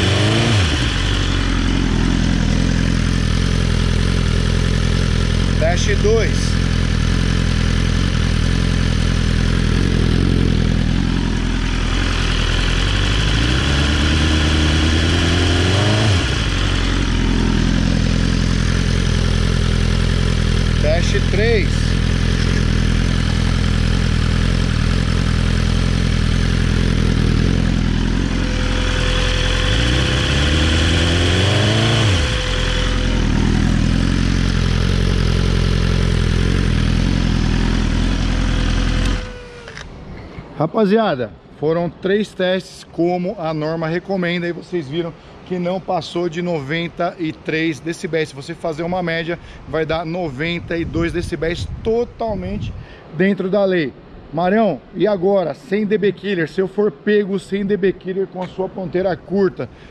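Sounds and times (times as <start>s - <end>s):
motorcycle engine idling and revving: 0.0s - 40.3s.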